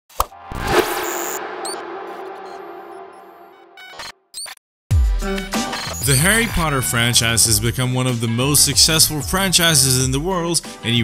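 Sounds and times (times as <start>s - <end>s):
rush of noise: 0.4s - 4.1s
sustained tone: 0.4s - 4.1s.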